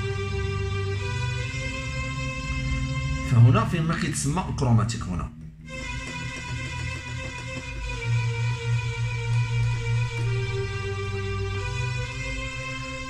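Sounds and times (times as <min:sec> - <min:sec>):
keyboard playing held notes: 0:00.0 - 0:13.0.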